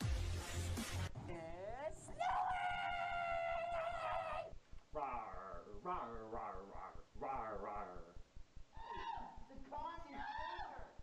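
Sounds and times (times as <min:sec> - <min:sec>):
person howling like a dog: 0:02.2 - 0:04.5.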